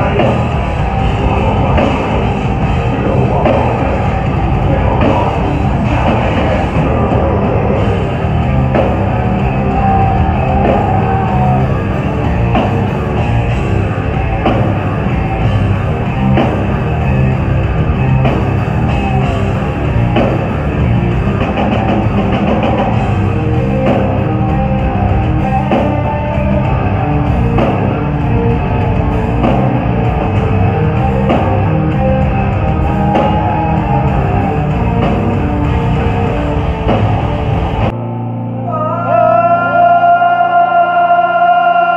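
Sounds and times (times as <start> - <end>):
pounding drum kit: 0.0 - 38.0
distorted electric guitars: 0.0 - 41.9.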